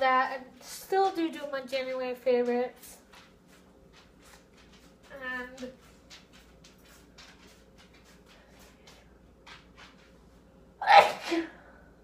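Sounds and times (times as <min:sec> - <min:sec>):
woman sneezing: 0:10.8 - 0:11.7.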